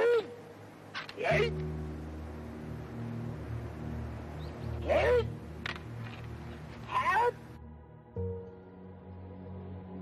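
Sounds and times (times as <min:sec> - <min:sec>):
low film soundtrack hum: 0:00.0 - 0:10.0.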